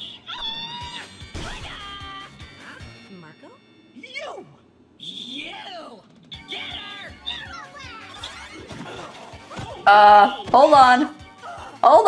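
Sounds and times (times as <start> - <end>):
cartoon characters' voices and shouts: 0.0 - 3.0, 4.0 - 12.0
cartoon background music: 0.0 - 4.5, 5.2 - 12.0.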